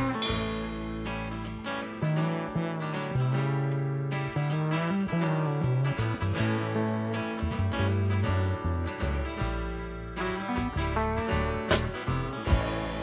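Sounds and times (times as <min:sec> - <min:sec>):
electric guitar: 0:00.0 - 0:13.0
plucked upright bass: 0:00.0 - 0:13.0
strummed acoustic guitar: 0:00.0 - 0:13.0.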